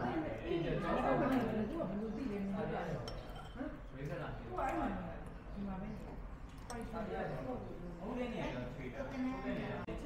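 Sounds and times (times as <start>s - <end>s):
metal spoon clinking ceramic bowl: 3.0s - 4.0s.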